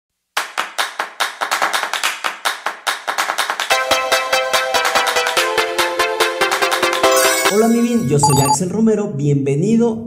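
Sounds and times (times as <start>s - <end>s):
clap-like percussion hits: 0.4s - 3.8s.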